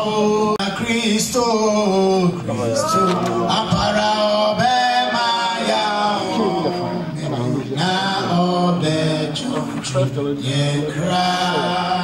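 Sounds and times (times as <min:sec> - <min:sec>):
man singing slow melody: 0:00.0 - 0:12.0.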